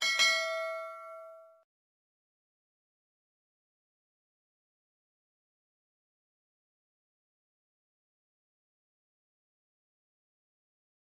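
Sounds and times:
notification bell ding: 0.0 - 1.6.

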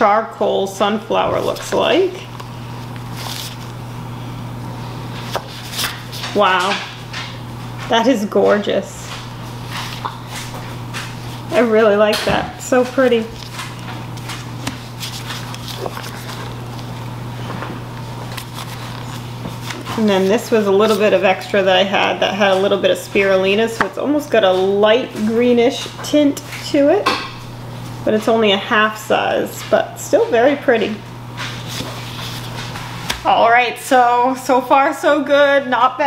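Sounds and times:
steady low hum: 0.0 - 36.0
gloved hands rubbing soap mold: 7.4 - 24.8.

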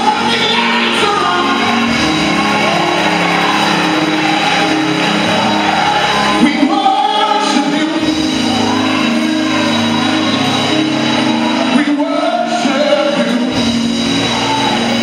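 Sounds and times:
band playing sustained chords: 0.0 - 15.0.

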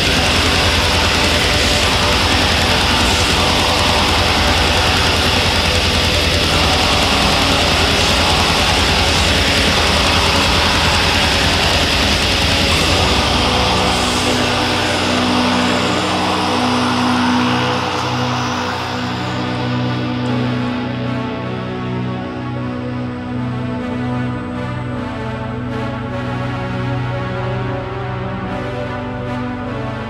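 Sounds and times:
fast drumming: 0.0 - 17.7
distorted guitars: 0.0 - 26.1.

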